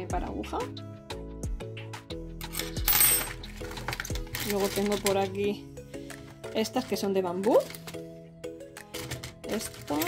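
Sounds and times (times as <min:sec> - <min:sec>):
background music: 0:00.0 - 0:10.0
metal hooks clattering on wood: 0:02.4 - 0:05.3, 0:08.8 - 0:10.0.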